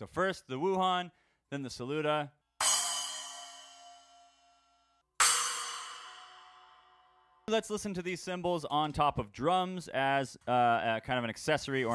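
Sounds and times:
splash cymbal struck: 0:02.6 - 0:04.4, 0:05.2 - 0:07.0
splash cymbal ringing: 0:02.6 - 0:04.5, 0:05.2 - 0:07.0.

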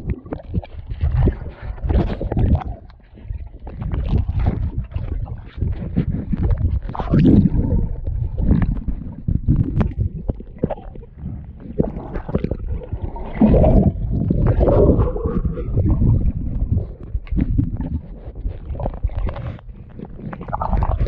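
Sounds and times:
underwater water churning: 0:00.0 - 0:21.0.

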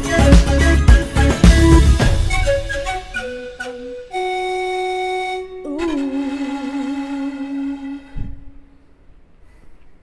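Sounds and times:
flute playing long notes: 0:00.0 - 0:08.9.

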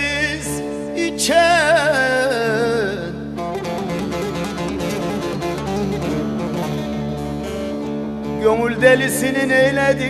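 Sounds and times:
plucked long-necked lute: 0:00.0 - 0:10.0.

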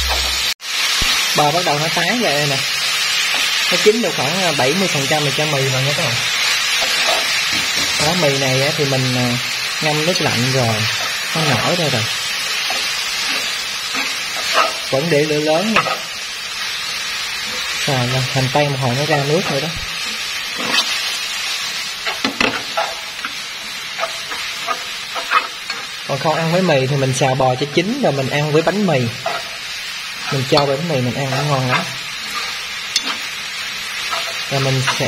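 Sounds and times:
food sizzling in a frying pan: 0:00.0 - 0:35.0.

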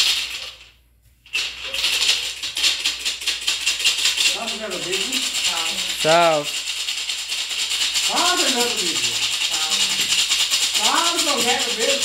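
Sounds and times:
maraca shaking: 0:00.0 - 0:12.0.

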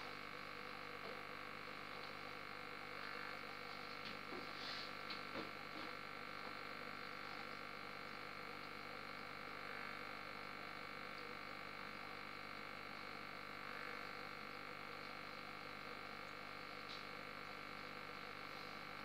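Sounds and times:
aquarium filter humming: 0:00.0 - 0:19.0.

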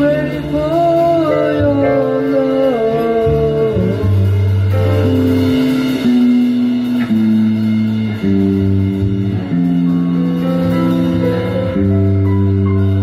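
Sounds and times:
bass guitar: 0:00.0 - 0:13.0
drum kit: 0:00.0 - 0:13.0
electric guitars: 0:00.0 - 0:13.0.

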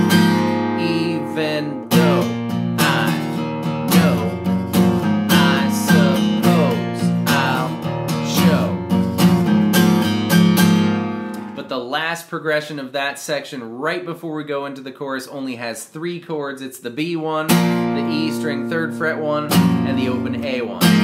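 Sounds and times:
acoustic guitar strumming: 0:00.0 - 0:11.8, 0:17.2 - 0:21.0.

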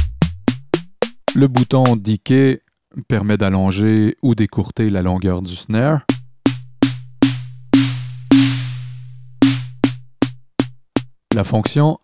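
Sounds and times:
synthesized snare drum hits: 0:00.0 - 0:02.1, 0:06.1 - 0:11.8.

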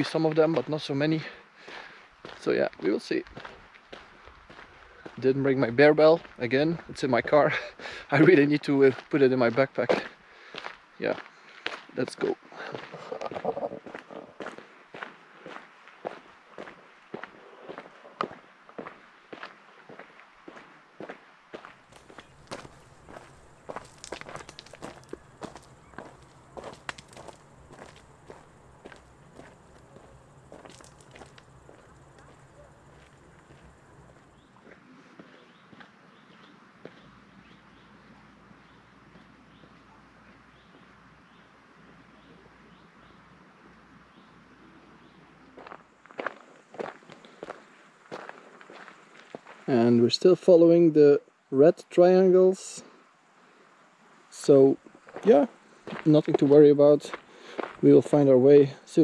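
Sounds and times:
faint outdoor hush: 0:00.0 - 0:09.0, 0:21.6 - 0:59.0
footsteps crunching on gravel: 0:02.2 - 0:07.5, 0:12.7 - 0:37.0, 0:45.6 - 0:49.7, 0:55.1 - 0:58.2.

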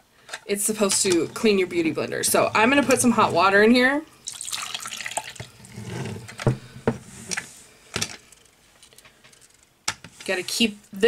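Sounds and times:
water pouring into plastic container: 0:04.2 - 0:05.6.

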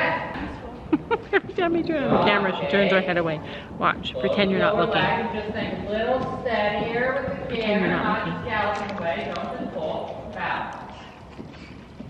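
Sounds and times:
woman's voice: 0:00.0 - 0:05.1, 0:07.7 - 0:08.4.

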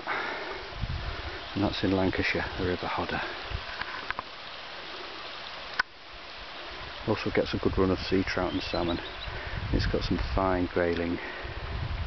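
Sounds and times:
river water flowing: 0:00.0 - 0:09.7.

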